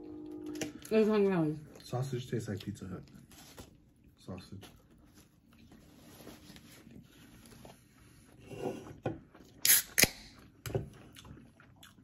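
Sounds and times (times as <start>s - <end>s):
people chewing food: 1.6s - 12.0s.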